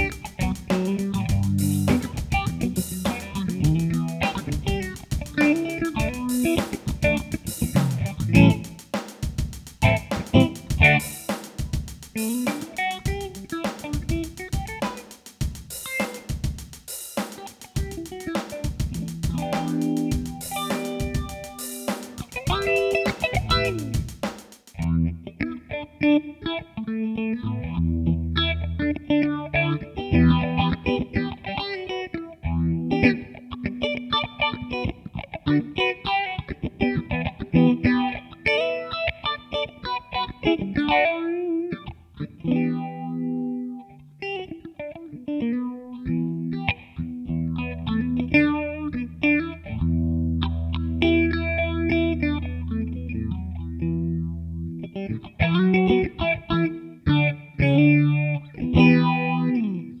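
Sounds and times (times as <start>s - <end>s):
electric guitar with auto-wah: 0.0s - 60.0s.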